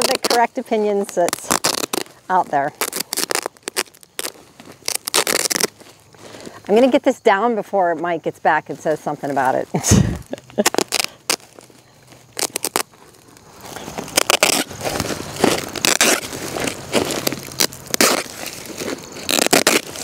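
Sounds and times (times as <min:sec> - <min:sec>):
fabric crinkling and rustling: 0:00.0 - 0:07.0, 0:08.7 - 0:20.0
gravel crunching: 0:00.0 - 0:20.0.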